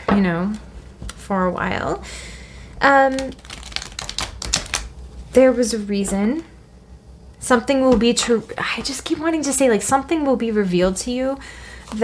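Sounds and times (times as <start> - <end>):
cards being shuffled: 3.1 - 4.9.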